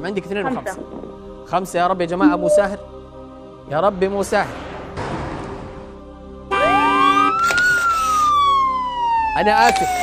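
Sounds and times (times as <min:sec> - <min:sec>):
siren-like tone sweeping: 0:02.2 - 0:02.9.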